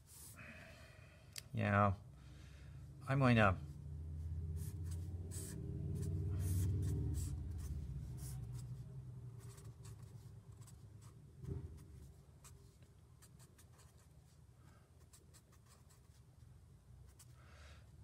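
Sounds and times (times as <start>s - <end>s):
marker drawing on paper: 4.6s - 8.8s, 9.4s - 14.4s, 15.0s - 16.3s.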